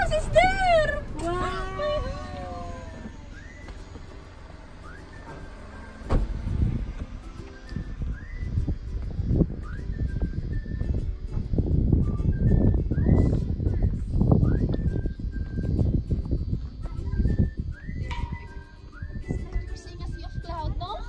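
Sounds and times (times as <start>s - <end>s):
wind rumbling on microphone: 0.0s - 21.0s
whistle-like background music: 3.2s - 4.0s, 4.6s - 21.0s.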